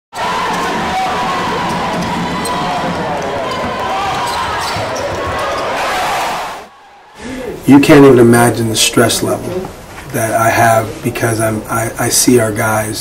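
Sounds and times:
basketball bouncing on court: 0.2s - 5.8s
crowd voices din: 0.2s - 8.0s
sneaker squeaks: 1.8s - 5.9s.

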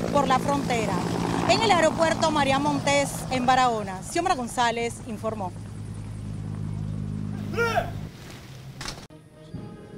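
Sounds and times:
low engine hum: 0.0s - 9.9s.

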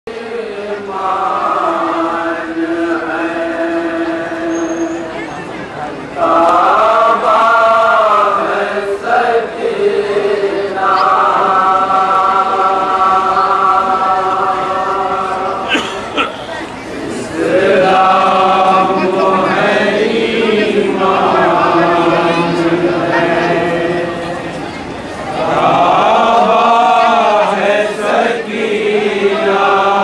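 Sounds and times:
men chanting a lament: 0.1s - 4.6s, 6.2s - 16.3s, 17.0s - 30.0s.

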